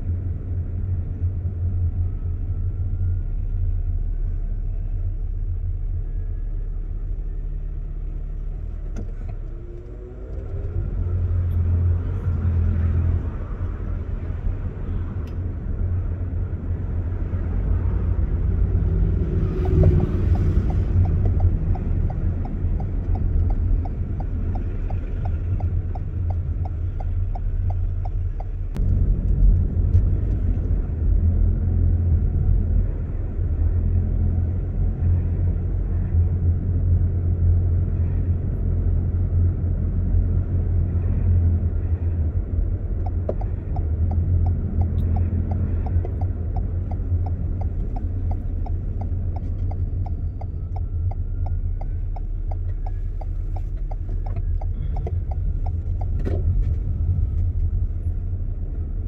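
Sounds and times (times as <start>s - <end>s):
car engine and road rumble: 0.0s - 59.0s
turn indicator ticking: 18.2s - 28.9s, 42.4s - 59.0s.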